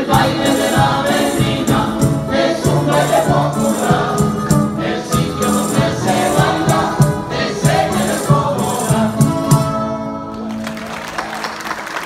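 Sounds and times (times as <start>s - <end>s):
group singing in chorus: 0.0s - 10.3s
rhythmic instrumental accompaniment: 0.0s - 11.9s.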